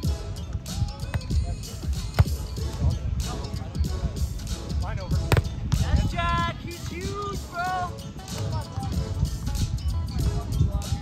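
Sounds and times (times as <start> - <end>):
wind rumble on microphone: 0.0 - 11.0
volleyball slapped by hand: 2.1 - 2.4, 5.2 - 5.9.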